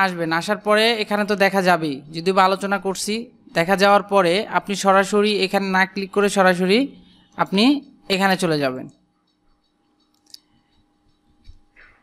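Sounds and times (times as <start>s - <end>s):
computer mouse click: 9.2s - 10.5s.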